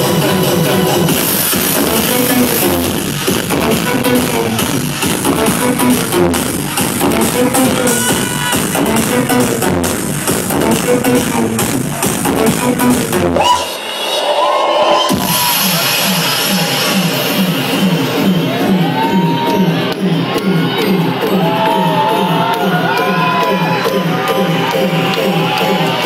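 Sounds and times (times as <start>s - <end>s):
loud trance music: 0.0s - 26.0s
crowd cheering: 7.1s - 9.4s, 13.3s - 26.0s.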